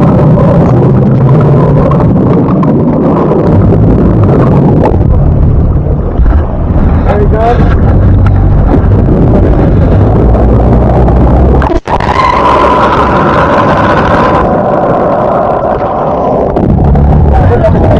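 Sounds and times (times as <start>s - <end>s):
boat engine rumbling: 0.0s - 17.9s
wind on microphone: 0.0s - 17.9s.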